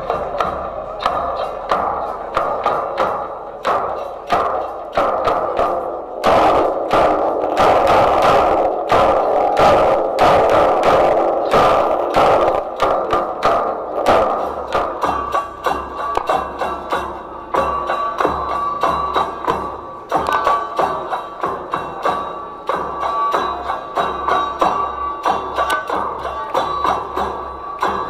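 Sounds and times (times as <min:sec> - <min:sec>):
drums in processional rhythm: 0:00.0 - 0:28.0.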